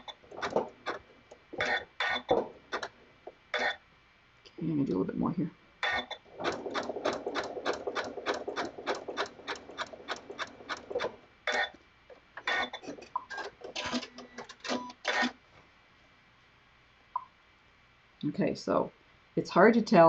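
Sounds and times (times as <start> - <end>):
sewing machine stitching: 0.0 - 1.0, 1.6 - 2.9, 5.9 - 11.7, 12.4 - 15.3
irregular clicks and knocks: 0.0 - 3.7, 5.8 - 15.3.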